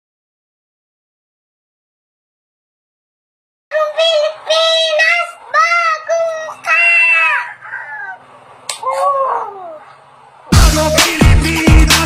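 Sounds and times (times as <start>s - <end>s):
child's high-pitched cries: 3.7s - 8.2s.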